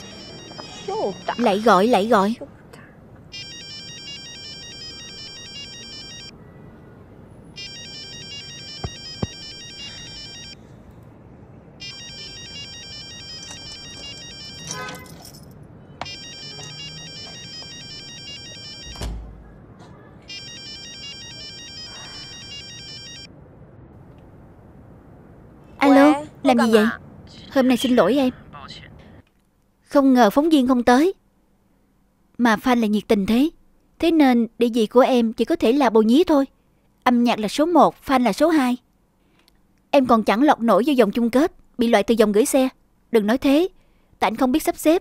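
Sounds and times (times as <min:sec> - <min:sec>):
phone ringtone warbling: 0:00.0 - 0:01.6, 0:03.3 - 0:06.3, 0:07.6 - 0:10.6, 0:11.8 - 0:14.8, 0:16.1 - 0:18.9, 0:20.3 - 0:23.3.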